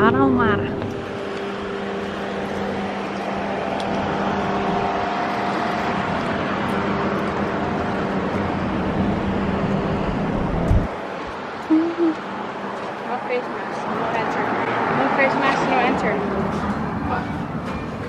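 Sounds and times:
street traffic engine hum: 0:00.0 - 0:18.0.

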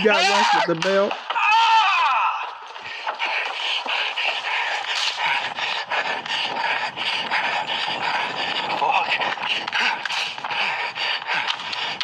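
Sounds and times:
running footfalls: 0:00.0 - 0:12.0.

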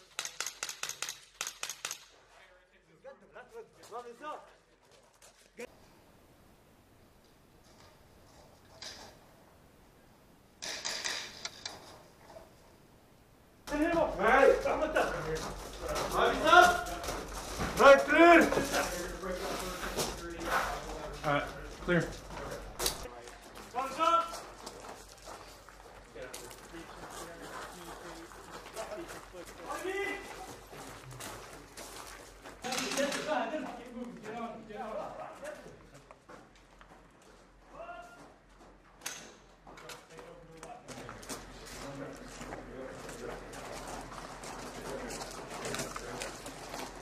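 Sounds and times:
man calling out: 0:16.1 - 0:17.0, 0:23.8 - 0:24.4, 0:37.7 - 0:38.2.

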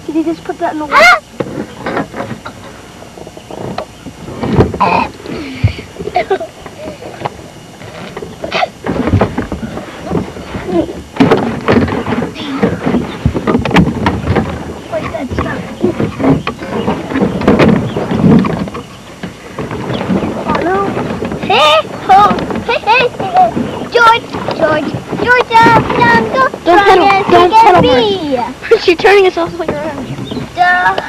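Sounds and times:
scattered knocks: 0:01.3 - 0:07.4, 0:08.2 - 0:28.2
indistinct voices: 0:04.2 - 0:18.8, 0:19.6 - 0:31.0
child's high-pitched voice: 0:21.5 - 0:28.6, 0:30.6 - 0:31.0.

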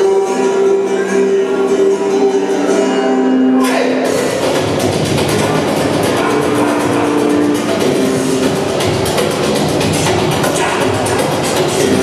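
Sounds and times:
instrumental music over loudspeakers: 0:00.0 - 0:12.0.

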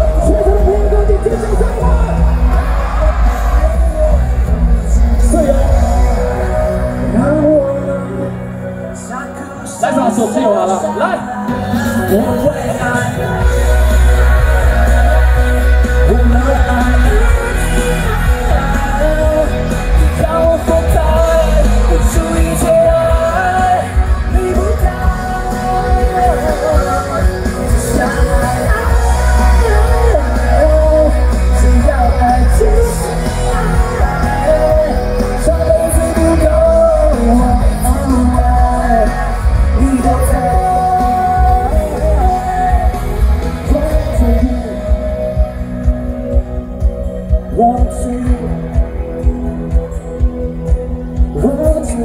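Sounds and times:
amplified backing music with bass beat: 0:00.0 - 0:52.0
man singing into a microphone: 0:00.0 - 0:52.0.

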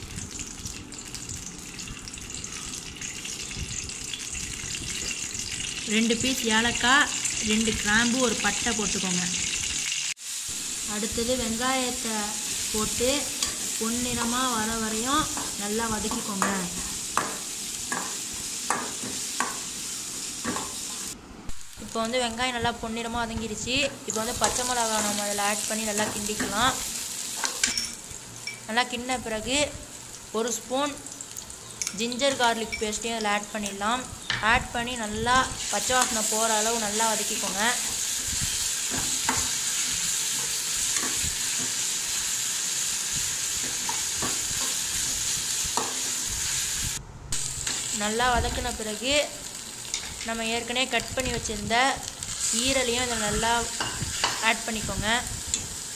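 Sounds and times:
onions sizzling in hot oil: 0:00.0 - 0:55.9.

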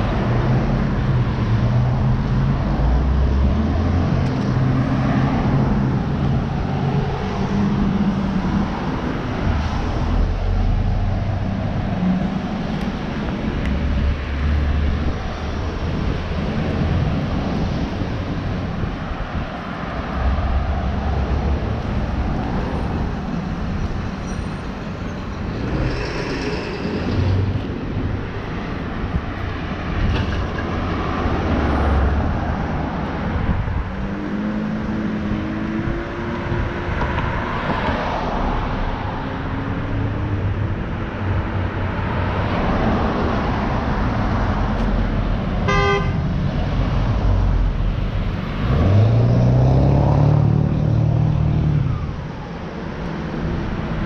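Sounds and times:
cars passing: 0:00.0 - 0:54.0.

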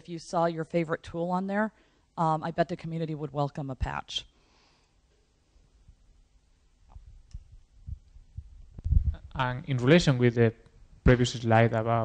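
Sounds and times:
microphone handling thumps: 0:06.9 - 0:09.4.

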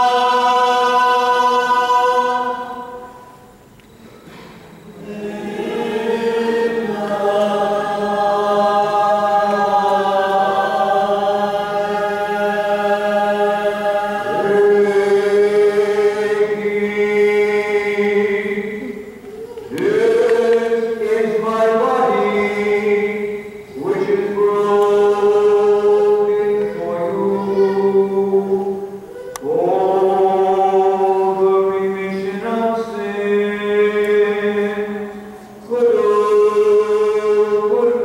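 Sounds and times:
congregation chanting: 0:00.0 - 0:03.7, 0:04.8 - 0:38.0.

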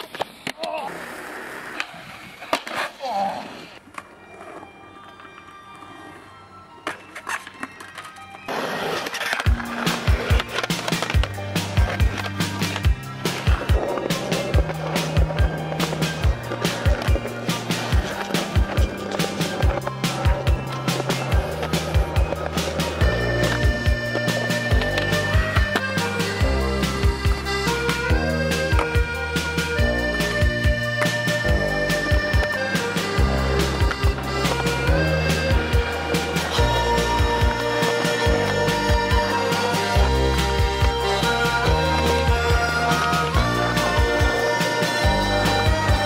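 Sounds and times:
skateboard clacking on concrete: 0:00.0 - 0:00.8, 0:06.8 - 0:46.0
music with drum beat and bass: 0:09.4 - 0:46.0.

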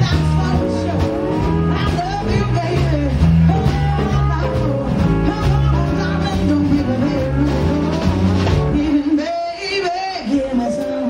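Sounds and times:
steady low bass notes: 0:00.0 - 0:09.2
drums: 0:00.0 - 0:11.0.

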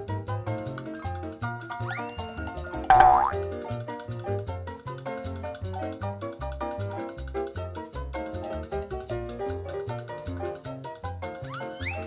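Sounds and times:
playful children's music: 0:00.3 - 0:03.4, 0:11.2 - 0:12.0
springy cartoon sound effect: 0:02.9 - 0:03.4.

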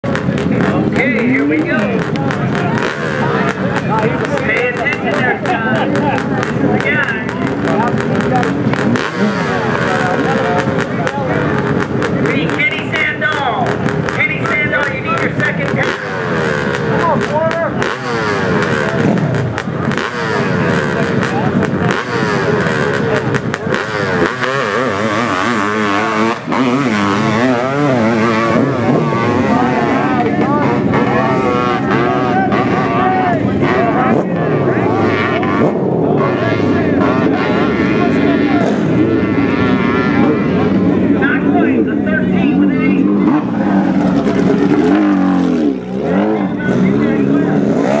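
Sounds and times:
dirt bike engine revving: 0:00.0 - 0:48.0.

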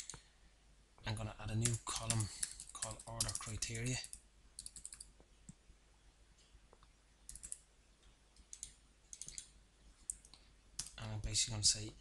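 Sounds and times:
keyboard keys clicking: 0:01.6 - 0:03.5, 0:04.6 - 0:05.1, 0:07.3 - 0:07.6, 0:08.4 - 0:09.5.

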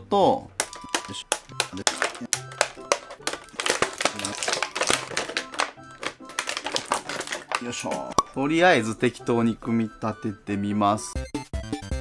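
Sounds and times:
background music: 0:00.0 - 0:12.0
plastic blister tray crinkling: 0:00.6 - 0:08.2.

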